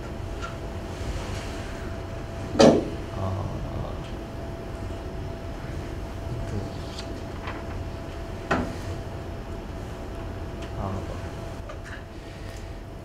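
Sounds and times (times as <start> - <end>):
ventilation hum: 0.0 - 13.0.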